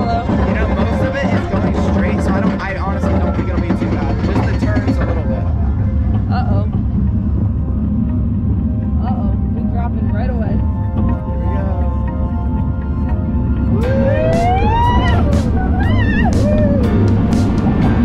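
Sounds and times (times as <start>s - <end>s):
music: 0.0s - 18.0s
roller coaster on track: 0.0s - 18.0s
wind rumble: 0.0s - 18.0s.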